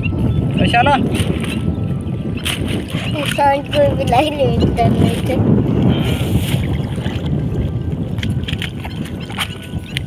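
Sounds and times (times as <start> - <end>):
choppy water rumble: 0.0 - 10.0
wind buffeting microphone: 0.0 - 10.0.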